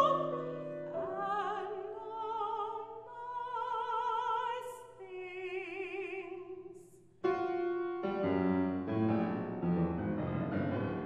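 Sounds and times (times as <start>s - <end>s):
piano chords: 0.0s - 2.4s, 7.2s - 11.0s.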